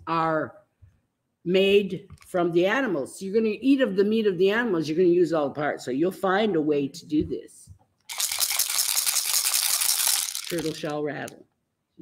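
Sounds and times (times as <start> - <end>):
shell rattle shaken: 8.1 - 11.4.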